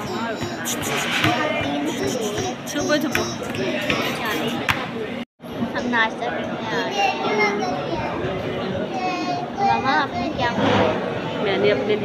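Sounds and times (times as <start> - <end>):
children talking and playing: 0.0 - 12.0
murmur of voices: 0.0 - 12.0.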